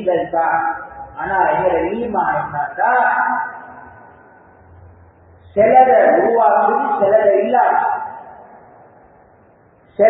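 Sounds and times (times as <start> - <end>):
man's amplified speech: 0.0 - 3.8, 5.6 - 8.5.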